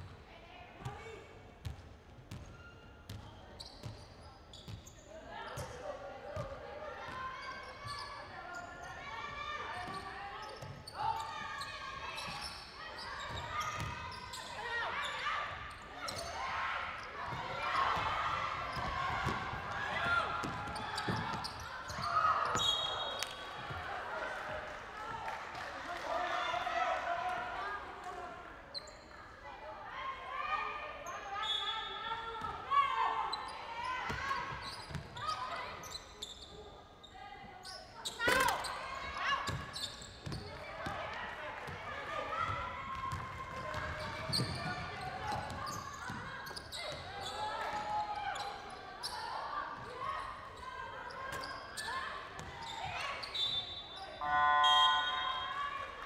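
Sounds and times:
shoe squeaks on court: 0:44.2 - 0:44.7
players calling out: 0:54.2 - 0:56.0.

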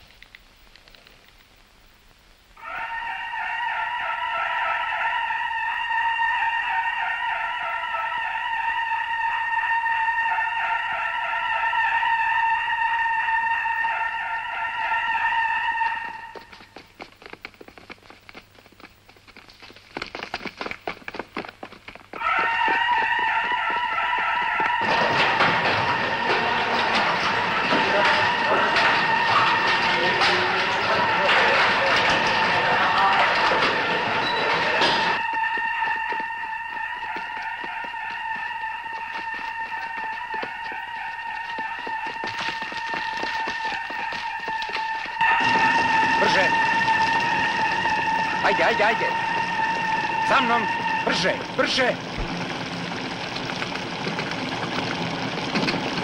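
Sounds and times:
clatter of people hurrying out: 0:15.1 - 0:56.0.

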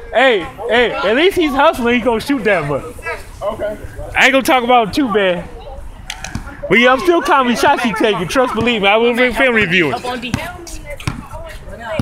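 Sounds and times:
faint voices: 0:00.0 - 0:12.0
basketball bouncing on asphalt: 0:08.5 - 0:12.0.

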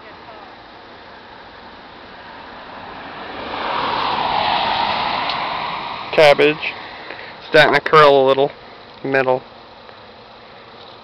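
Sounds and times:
passing vehicle rushing noise: 0:01.7 - 0:07.8.

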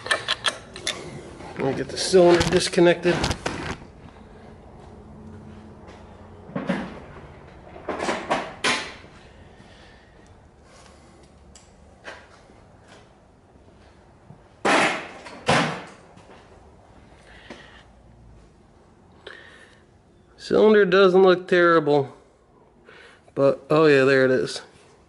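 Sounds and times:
tools and metal parts clunking: 0:06.5 - 0:09.0.

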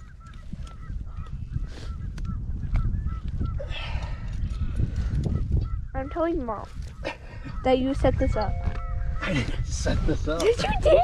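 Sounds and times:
geese honking: 0:07.6 - 0:09.5.

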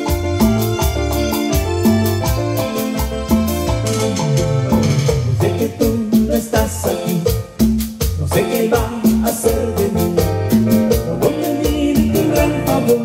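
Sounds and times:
live band playing cumbia: 0:00.0 - 0:13.0.

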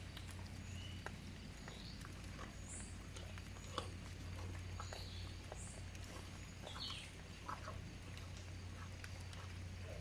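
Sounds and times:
paws digging in wet soil and leaves: 0:00.0 - 0:10.0
steady low hum: 0:00.0 - 0:10.0.

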